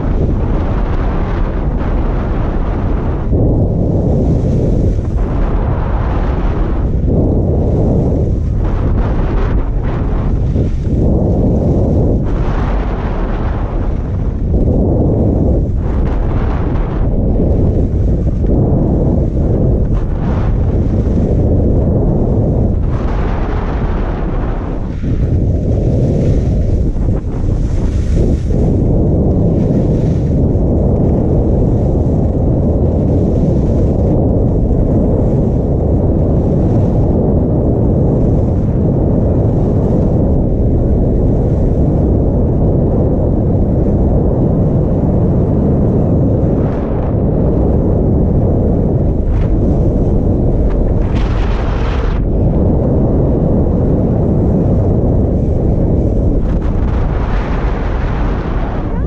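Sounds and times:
heavy wind rumble on microphone: 0.0s - 59.0s.

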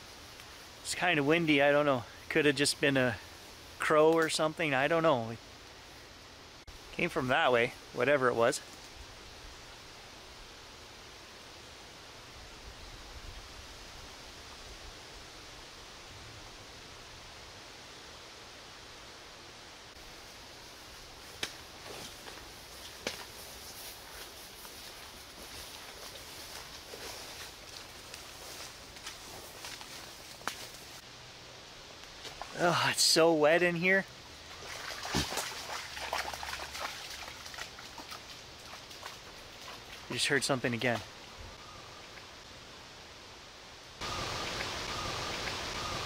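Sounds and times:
wind through leaves: 0.0s - 46.0s
footsteps through undergrowth: 20.0s - 31.0s, 34.4s - 40.2s
twigs snapping: 21.3s - 23.4s, 28.9s - 30.9s.

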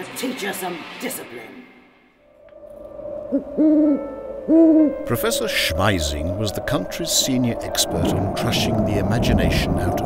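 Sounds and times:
owl hooting: 3.0s - 8.9s.

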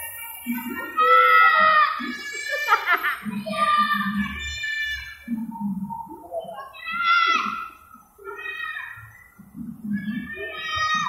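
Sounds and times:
children shouting and squealing: 0.0s - 11.0s.

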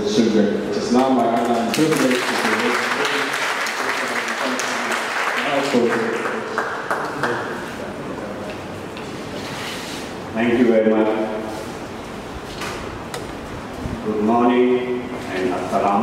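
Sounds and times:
audience applauding: 1.4s - 7.8s.

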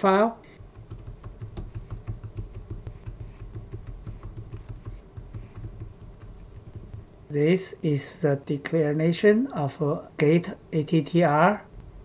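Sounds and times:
computer keyboard typing: 0.6s - 7.0s.

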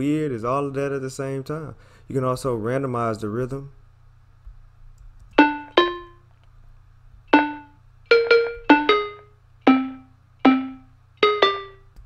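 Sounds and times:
synth melody: 5.4s - 6.2s, 7.3s - 11.9s.

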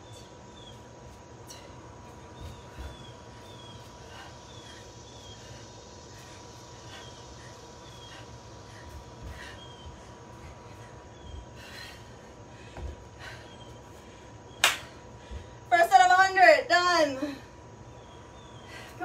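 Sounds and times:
steady hum: 0.0s - 19.0s
sharp clap: 14.6s - 14.9s.

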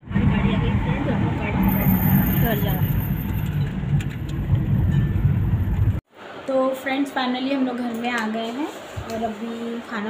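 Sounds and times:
car road and engine rumble: 0.0s - 6.0s.

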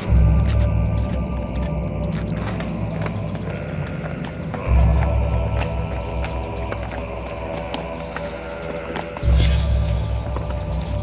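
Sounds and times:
dramatic music with pulsing bass: 0.0s - 11.0s.

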